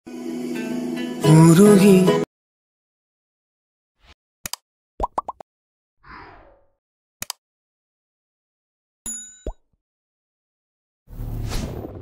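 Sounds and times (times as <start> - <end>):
bright ringing ding: 9.1 - 9.6.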